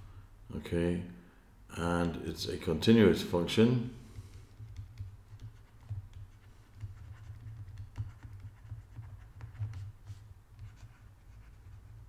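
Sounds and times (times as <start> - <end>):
stylus scratching on tablet screen: 4.2 - 12.0.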